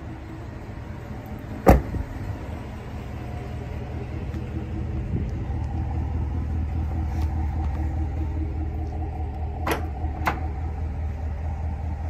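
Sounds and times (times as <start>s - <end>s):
pickup truck engine idling: 0.0s - 12.0s.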